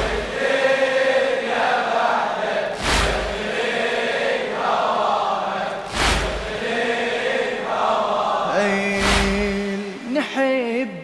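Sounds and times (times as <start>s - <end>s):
men chanting lament: 0.0s - 10.6s
loud thump: 2.7s - 3.5s, 5.8s - 6.6s, 9.0s - 10.0s
background voices: 8.4s - 11.0s.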